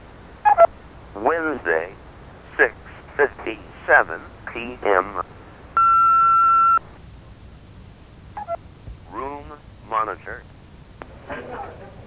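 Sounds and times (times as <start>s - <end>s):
faint line hiss: 0.0s - 11.6s
answering machine beep: 5.8s - 6.9s.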